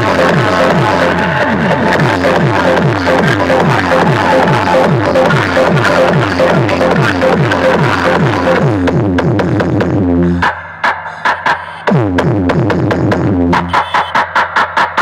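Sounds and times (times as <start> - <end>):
loud electronic dance music: 0.0 - 15.0
steady pulsing beep: 13.6 - 14.2.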